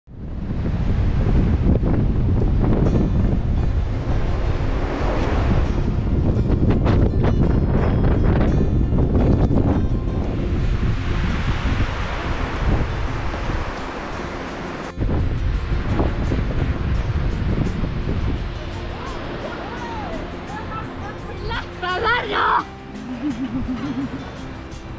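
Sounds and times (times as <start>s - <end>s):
wind buffeting microphone: 0.1s - 24.9s.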